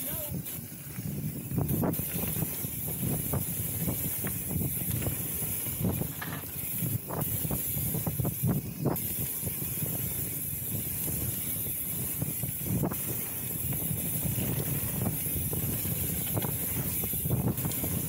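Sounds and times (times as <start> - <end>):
bike rattling over bumps: 0.0 - 18.0
bike tyres on dirt: 0.0 - 18.0
wind on microphone: 0.0 - 18.0.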